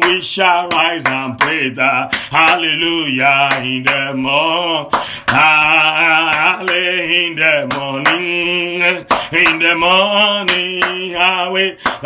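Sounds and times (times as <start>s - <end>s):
gospel chorus singing: 0.0s - 11.8s.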